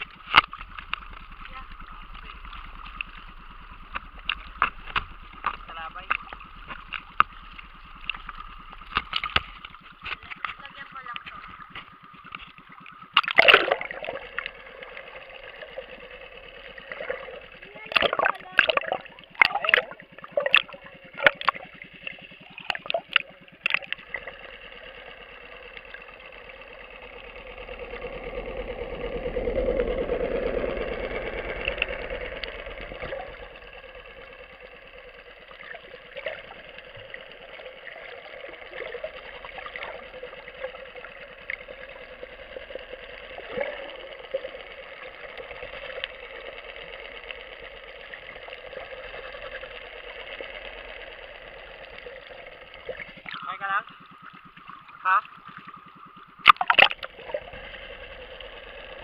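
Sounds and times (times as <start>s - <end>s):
sharp clicks: 0.0s - 14.6s
muffled underwater boat motor hum: 0.0s - 59.0s.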